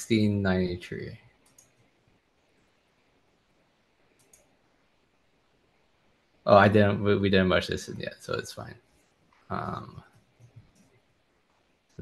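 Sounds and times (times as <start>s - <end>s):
faint clicks: 1.2s - 2.0s, 4.1s - 4.6s, 8.9s - 12.0s.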